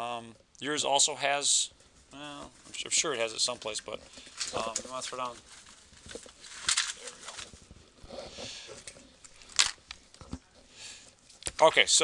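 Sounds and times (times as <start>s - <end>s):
faint handling noise: 1.8s - 11.9s.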